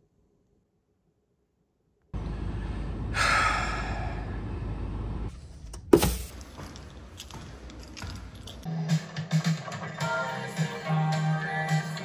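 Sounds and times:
low steady rumble: 0:02.2 - 0:05.8
person sighing: 0:03.1 - 0:04.5.

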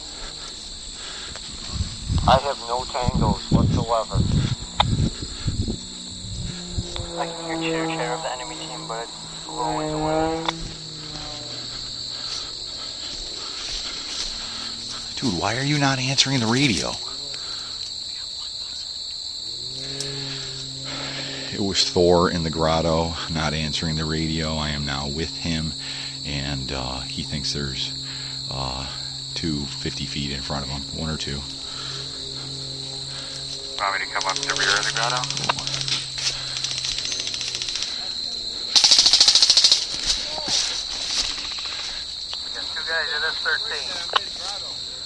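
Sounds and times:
low steady hum: 0:00.0 - 0:17.8, 0:19.4 - 0:38.7
crickets chirring: 0:00.0 - 0:45.0
rustling undergrowth: 0:10.6 - 0:15.2, 0:31.5 - 0:43.5.

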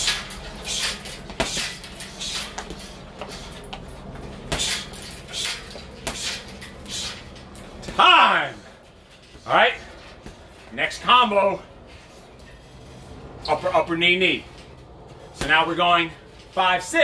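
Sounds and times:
punches thudding on heavy bag: 0:00.0 - 0:06.8.

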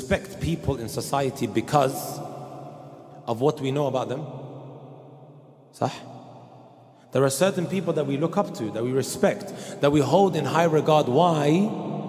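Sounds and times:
man speaking into a microphone: 0:00.0 - 0:02.4, 0:03.1 - 0:04.4, 0:05.8 - 0:06.1, 0:07.1 - 0:12.0.

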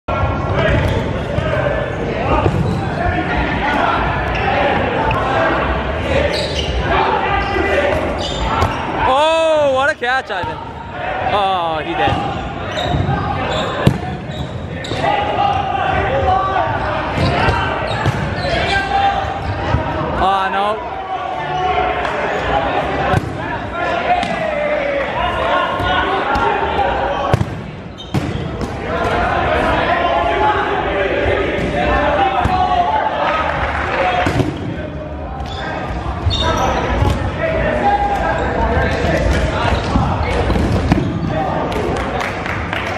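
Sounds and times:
players shouting and chatter: 0:00.0 - 0:42.9.

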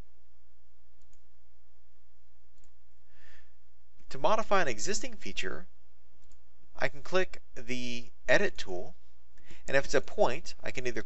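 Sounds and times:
steady low hum: 0:00.0 - 0:11.0
computer mouse clicks: 0:01.0 - 0:01.3, 0:02.5 - 0:02.8, 0:06.2 - 0:06.4.

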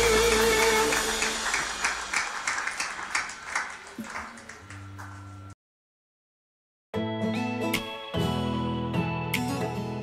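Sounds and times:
live band held chord: 0:00.0 - 0:02.8
audience clapping: 0:00.0 - 0:05.6.

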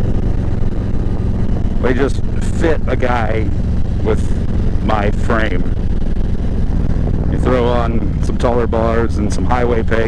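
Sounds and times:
motorcycle engine cruising: 0:00.0 - 0:10.0.

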